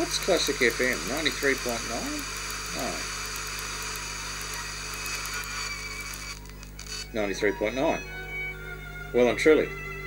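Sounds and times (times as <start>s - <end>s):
radio static hiss: 0.0s - 7.4s
steady low hum: 0.0s - 10.0s.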